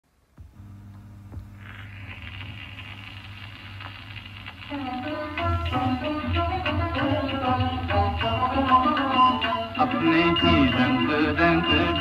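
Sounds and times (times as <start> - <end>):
record surface hiss: 0.0 - 12.0
low hum: 0.2 - 6.4.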